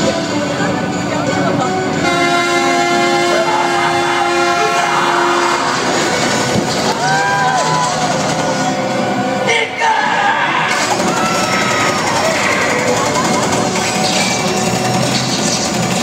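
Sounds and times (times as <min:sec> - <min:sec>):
steady din of a show: 0:00.0 - 0:16.0
horn blast: 0:02.0 - 0:13.0
voice shouting over loudspeakers: 0:03.1 - 0:05.9, 0:09.4 - 0:12.7.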